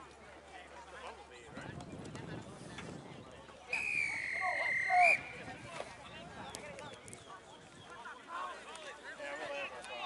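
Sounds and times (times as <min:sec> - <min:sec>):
spectators chattering: 0:00.0 - 0:10.0
referee's whistle blast: 0:03.7 - 0:05.4.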